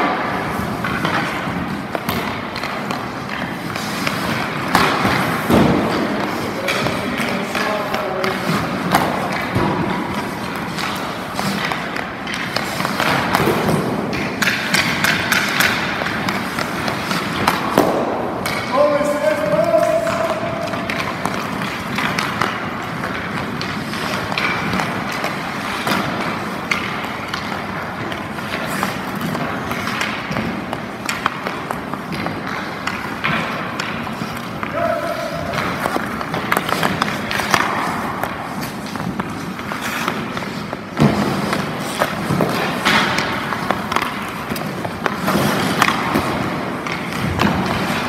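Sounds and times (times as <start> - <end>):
pucks shot off sticks: 0.0 - 48.0
pucks striking goalie pads: 0.0 - 48.0
skates scraping ice: 0.0 - 48.0
stick blades knocking on ice: 0.8 - 48.0.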